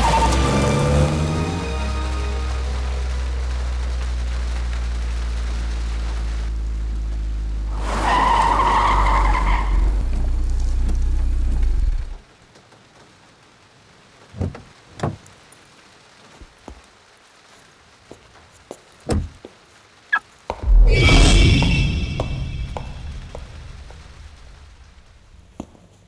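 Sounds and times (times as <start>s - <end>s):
car engine droning: 0.0s - 12.2s.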